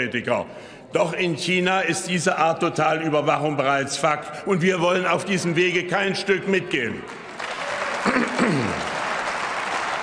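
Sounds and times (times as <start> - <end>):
man's voice: 0.0 - 7.0
crowd applauding: 7.0 - 10.0.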